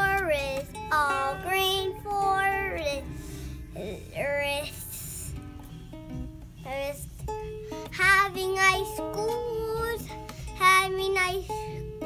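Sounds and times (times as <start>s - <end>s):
boy singing: 0.0s - 3.1s, 3.8s - 5.4s, 6.6s - 7.2s, 7.9s - 11.7s.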